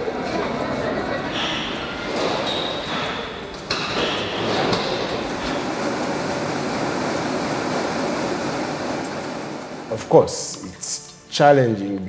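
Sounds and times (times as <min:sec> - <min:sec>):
factory machinery din: 0:00.0 - 0:10.3.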